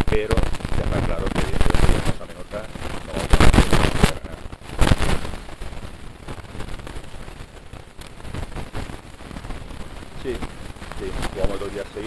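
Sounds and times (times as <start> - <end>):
crackling and popping noise: 0.0 - 12.0.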